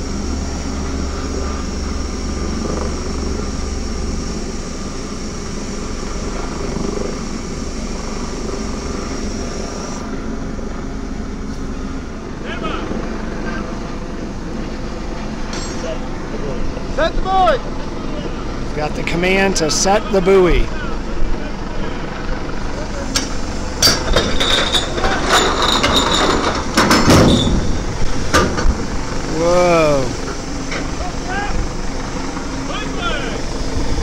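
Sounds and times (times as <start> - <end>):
ship machinery drone: 0.0 - 34.0
thin high whine: 0.0 - 34.0.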